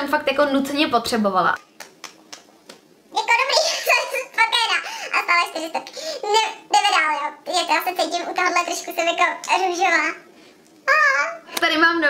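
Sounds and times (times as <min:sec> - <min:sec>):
young woman speaking: 0:00.0 - 0:01.6.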